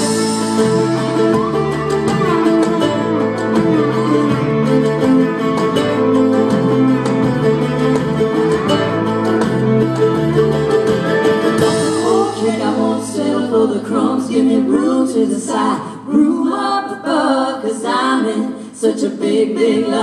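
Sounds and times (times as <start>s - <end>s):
strummed acoustic guitar: 0.0s - 14.0s
bass line: 0.0s - 14.5s
plucked strings: 0.0s - 16.0s
drums: 0.0s - 16.1s.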